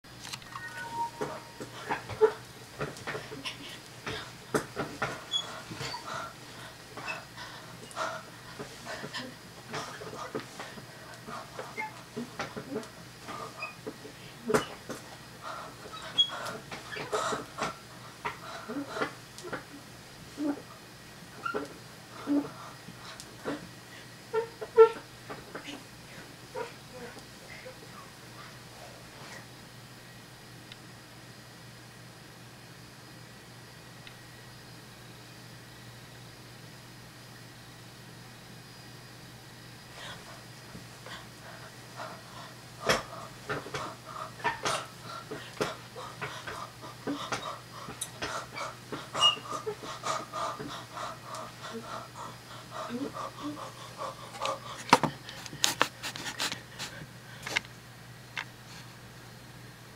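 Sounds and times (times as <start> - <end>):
boy laughing breathlessly: 44.4 - 55.0.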